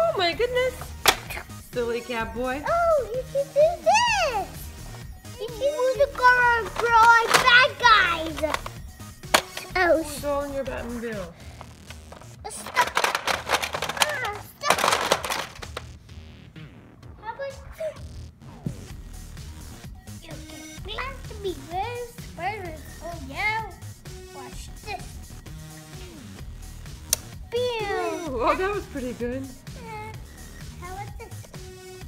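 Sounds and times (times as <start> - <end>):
plastic toy clicking and clattering: 6.6 - 9.8, 11.9 - 15.9
plastic toy click: 8.4 - 9.7.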